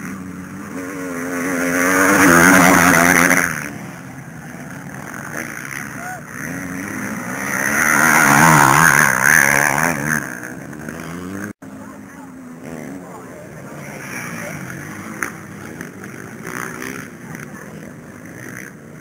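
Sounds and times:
motocross bike engines revving: 0.0s - 19.0s.

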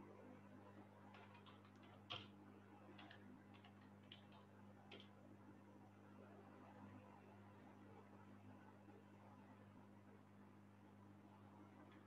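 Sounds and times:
low electrical hum: 0.0s - 12.0s
faint clicks: 2.9s - 5.2s.

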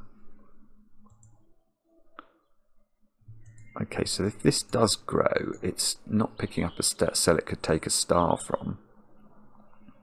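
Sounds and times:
computer mouse click: 1.0s - 1.4s, 3.4s - 3.8s.

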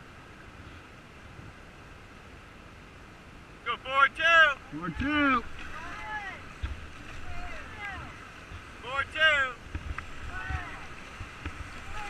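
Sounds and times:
rushing whitewater: 0.0s - 12.0s
wind buffeting microphone: 9.6s - 12.0s.

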